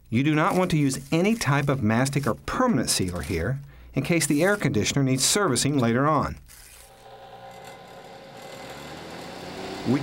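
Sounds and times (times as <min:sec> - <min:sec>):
test fan humming: 0:06.9 - 0:10.0.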